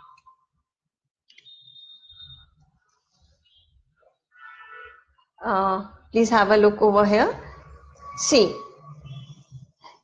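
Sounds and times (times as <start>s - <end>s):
faint high-pitched beep: 0.0s - 0.5s, 1.3s - 2.6s, 7.4s - 9.6s.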